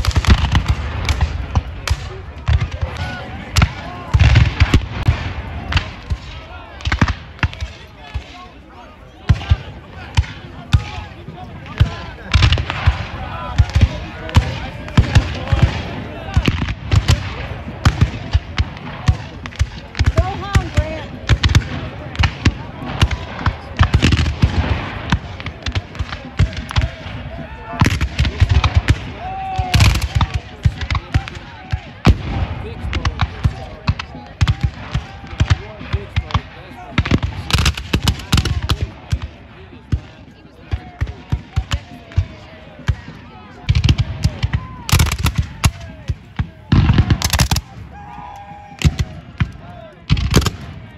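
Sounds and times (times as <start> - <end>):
cannon reports: 0.0 - 50.9
musket shots: 27.8 - 40.1, 43.7 - 47.8, 48.8 - 50.9.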